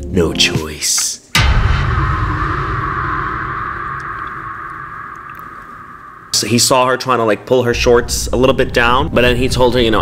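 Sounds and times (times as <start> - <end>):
low boom tail: 1.4 - 9.6.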